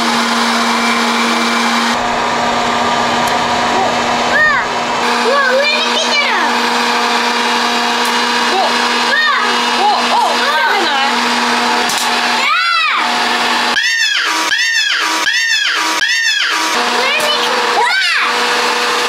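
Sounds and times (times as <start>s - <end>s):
swooping rising and falling tones: 0.0s - 7.8s
popcorn maker whirring hum: 0.0s - 19.0s.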